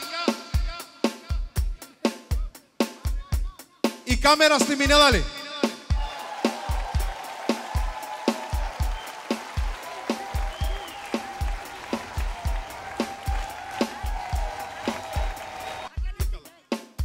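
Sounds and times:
kick drum beat: 5.9 - 16.4.

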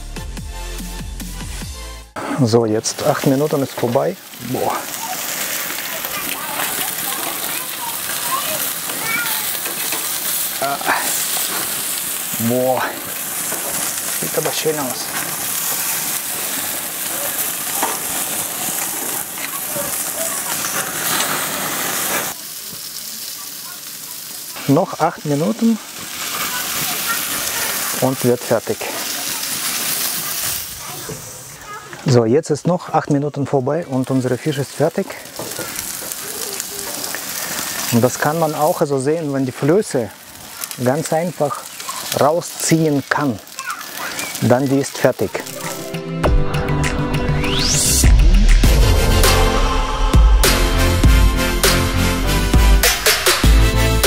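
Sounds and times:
fish sizzling on a grill: 2.1 - 46.2.

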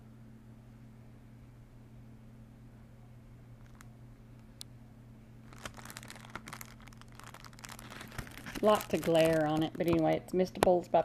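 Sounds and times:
low electrical hum: 0.0 - 11.0
plastic packaging crinkling: 3.6 - 3.9, 5.4 - 10.7.

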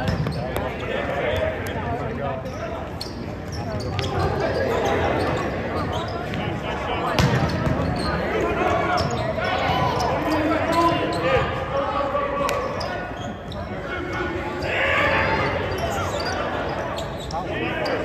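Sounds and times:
players calling out: 0.0 - 18.0
spectators talking: 0.0 - 18.0.

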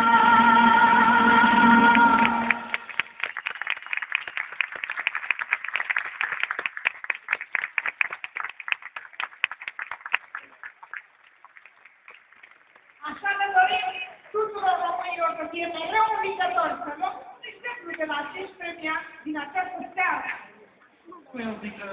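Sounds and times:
audience applauding: 1.9 - 13.0.

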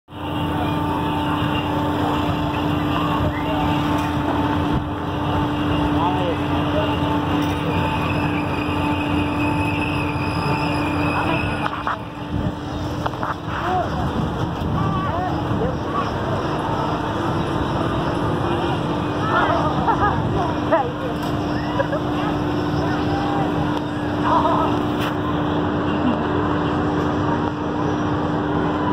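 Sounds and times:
people's voices: 0.1 - 27.8
ride machinery hum: 0.1 - 28.9.

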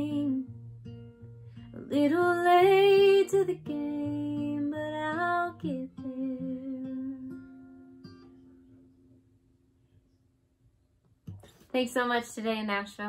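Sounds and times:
acoustic guitar strumming: 0.0 - 9.2.

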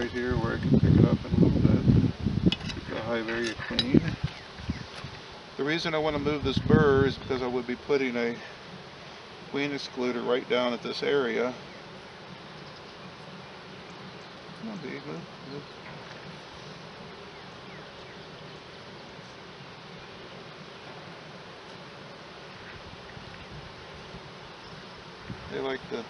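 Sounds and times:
honey bees buzzing: 0.0 - 26.0.

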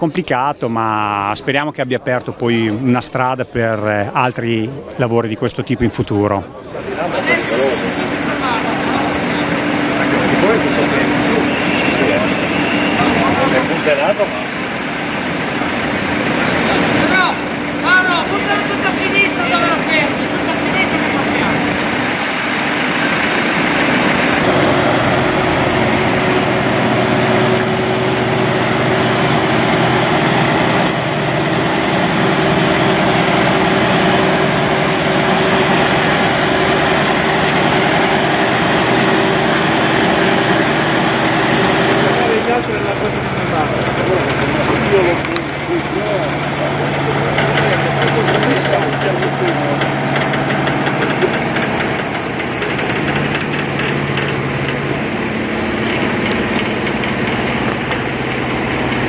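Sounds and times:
people's voices: 0.0 - 23.6, 39.2 - 55.1
truck diesel engine running: 5.8 - 59.0.

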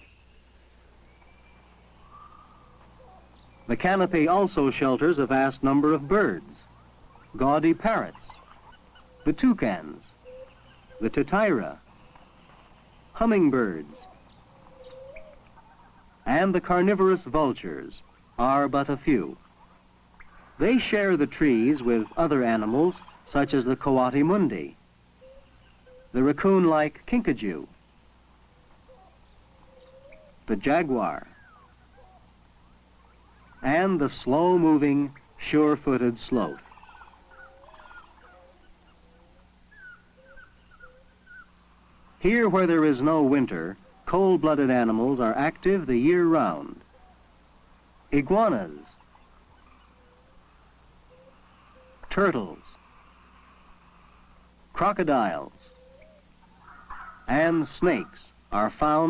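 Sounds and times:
faint bird calls: 0.0 - 59.0
steady low hum: 0.0 - 59.0.

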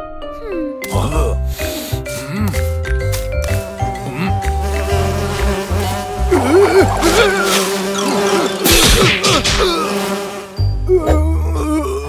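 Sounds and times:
background music: 0.0 - 12.0
cartoon bees buzzing: 3.4 - 11.1.

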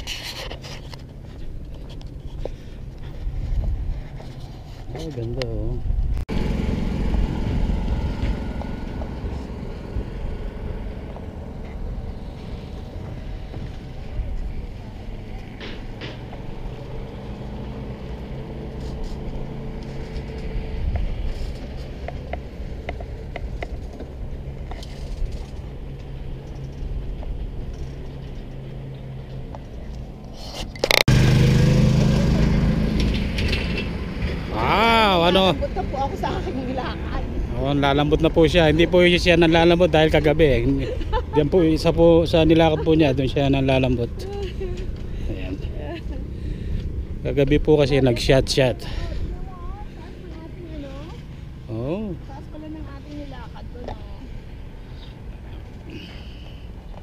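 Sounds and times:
wind buffeting microphone: 1.0 - 18.4.

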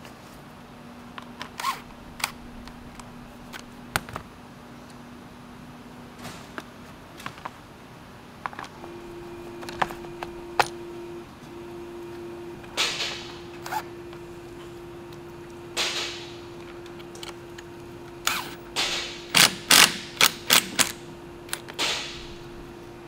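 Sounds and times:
faint steady hum: 0.0 - 23.0.

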